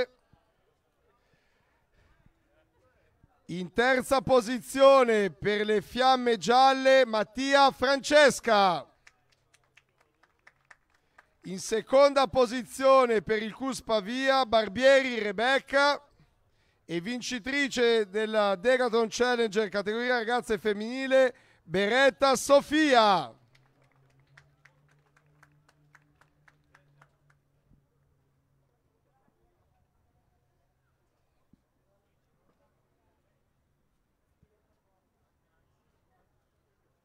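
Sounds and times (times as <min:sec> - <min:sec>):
faint hand claps: 0:09.0 - 0:11.5, 0:23.4 - 0:27.4
quick hand clapping: 0:09.0 - 0:11.5.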